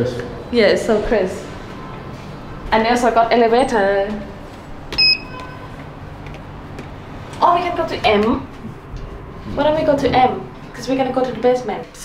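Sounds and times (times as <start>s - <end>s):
short high electronic beep: 5.0s - 5.4s.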